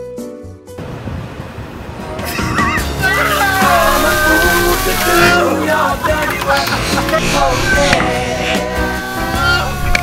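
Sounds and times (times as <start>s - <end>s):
water pouring and splashing: 2.0s - 7.2s
high wavering yelp: 2.3s - 10.0s.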